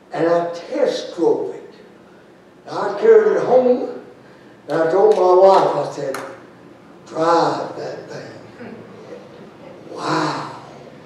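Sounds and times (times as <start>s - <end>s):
man preaching: 0.1s - 1.8s, 2.6s - 6.4s, 7.1s - 8.5s, 9.9s - 10.9s.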